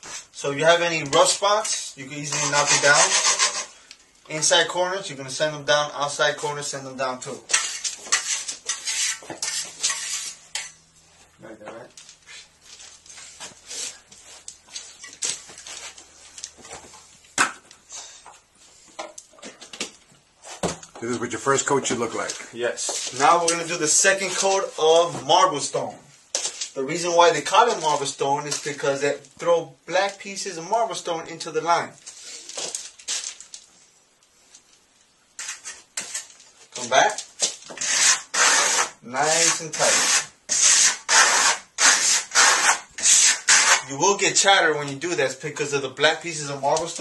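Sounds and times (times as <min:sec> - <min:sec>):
hand tool scraping plaster: 0:01.6 - 0:03.8, 0:07.5 - 0:10.6, 0:35.4 - 0:36.4, 0:37.7 - 0:43.9.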